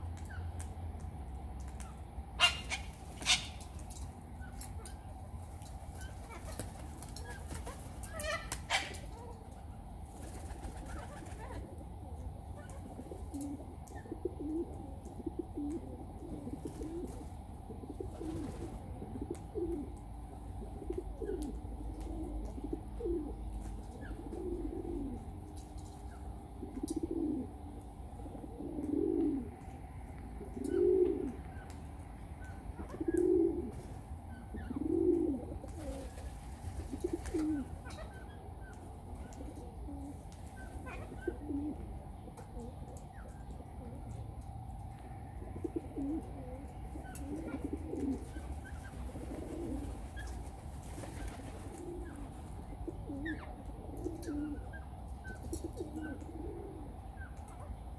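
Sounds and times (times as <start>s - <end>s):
dove cooing: 5.9s - 57.9s.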